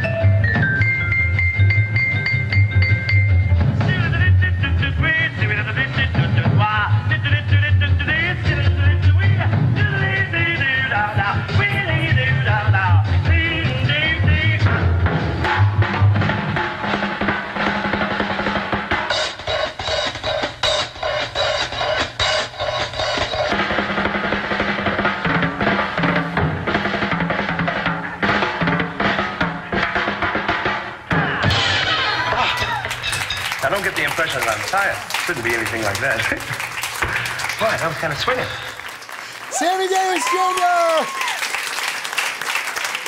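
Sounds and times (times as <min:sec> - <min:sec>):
swing band playing: 0:00.0 - 0:39.6
drum kit solo: 0:08.0 - 0:36.3.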